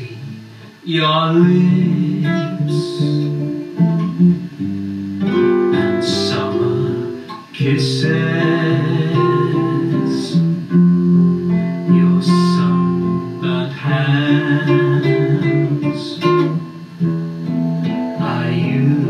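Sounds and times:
classical guitar plucking: 0:00.0 - 0:19.0
electric bass: 0:00.0 - 0:19.0.

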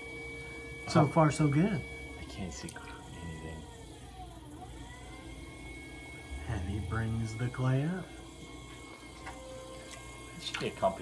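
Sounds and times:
potter's wheel humming: 0:00.0 - 0:11.0.

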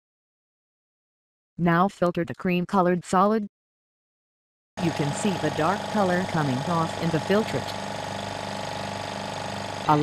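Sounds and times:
vacuum pump humming: 0:04.8 - 0:10.0.

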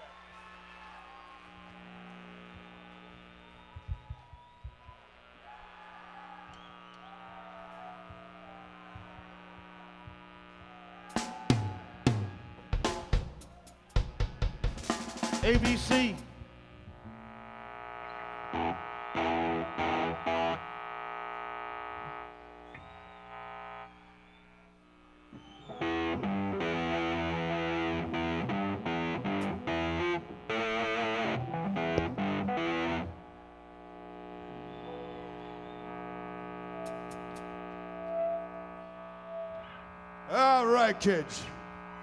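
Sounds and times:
distorted electric guitar: 0:07.4 - 0:13.4, 0:14.0 - 0:24.0, 0:25.6 - 0:42.0.

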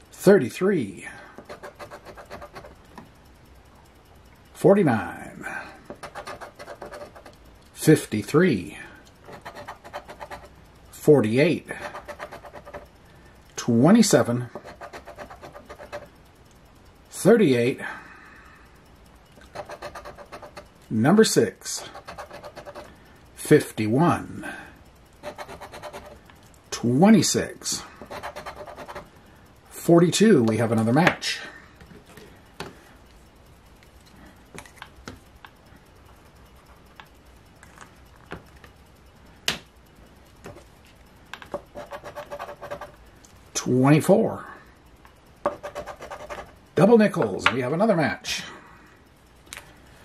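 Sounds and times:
coin scratching lottery ticket: 0:01.4 - 0:02.8, 0:06.0 - 0:07.4, 0:09.2 - 0:10.6, 0:11.7 - 0:12.9, 0:14.0 - 0:16.1, 0:19.4 - 0:20.6, 0:21.9 - 0:22.9, 0:25.2 - 0:26.2, 0:28.0 - 0:29.1, 0:41.6 - 0:43.0, 0:45.5 - 0:46.6
marker and coin clicking: 0:09.2 - 0:10.6, 0:14.5 - 0:16.1, 0:25.2 - 0:26.2, 0:41.5 - 0:43.0.

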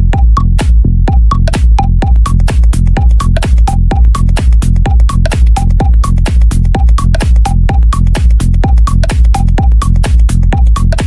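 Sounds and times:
held bass line: 0:00.0 - 0:11.0
high percussion hits: 0:00.0 - 0:11.0
kick drum: 0:00.0 - 0:11.0.

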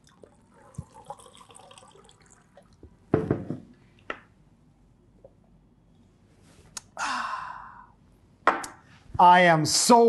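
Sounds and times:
tumbler knocking on table: 0:03.1 - 0:03.7
man exhaling breathily: 0:07.0 - 0:08.0.

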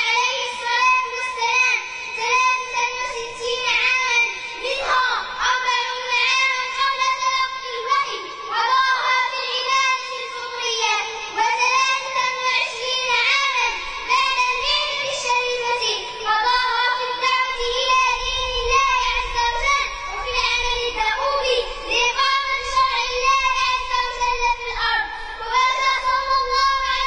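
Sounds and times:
girl chanting melodically: 0:00.0 - 0:27.0.

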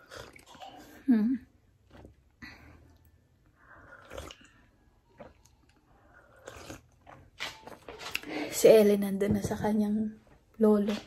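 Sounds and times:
person slurping coffee: 0:03.8 - 0:04.6.

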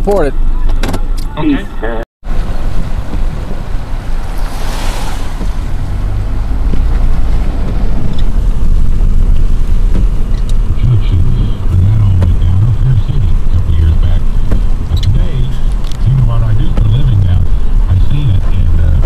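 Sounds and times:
car engine and tyre rumble: 0:00.0 - 0:19.0
muffled voice: 0:01.3 - 0:02.0, 0:10.6 - 0:19.0.

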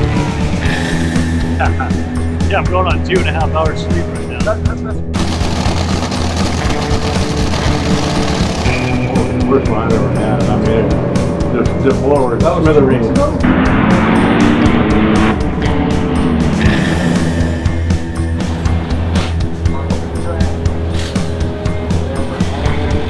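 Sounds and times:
music with steady beat: 0:00.0 - 0:23.0.

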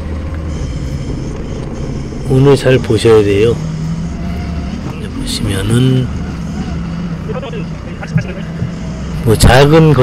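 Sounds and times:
forklift engine humming: 0:00.0 - 0:10.0.

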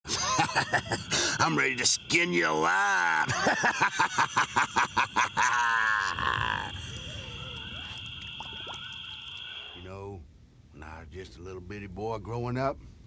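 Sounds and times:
man laughing: 0:00.1 - 0:01.5, 0:03.0 - 0:06.8
high-pitched drone: 0:00.1 - 0:10.1.

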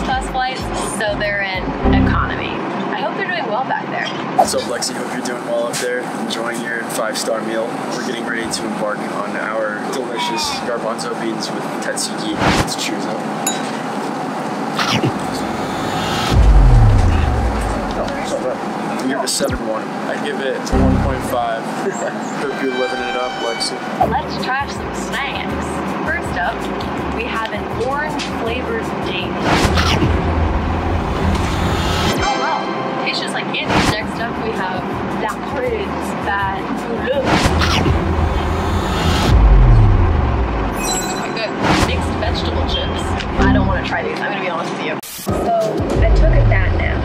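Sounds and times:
background music: 0:00.0 - 0:02.6, 0:20.6 - 0:21.6, 0:22.4 - 0:40.9, 0:41.8 - 0:44.3
woman talking: 0:00.0 - 0:04.3, 0:24.0 - 0:29.6, 0:32.2 - 0:37.4, 0:41.2 - 0:47.0
airliner cabin noise: 0:02.9 - 0:25.5
low pitch-dropping sound effect: 0:14.8 - 0:18.6, 0:20.6 - 0:21.6, 0:29.4 - 0:34.0, 0:37.2 - 0:40.9
deep boom falling in pitch: 0:16.1 - 0:18.3, 0:37.5 - 0:40.8.

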